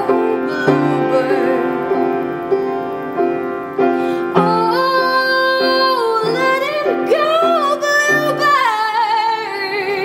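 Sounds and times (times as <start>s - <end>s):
upright piano chords: 0.0s - 10.0s.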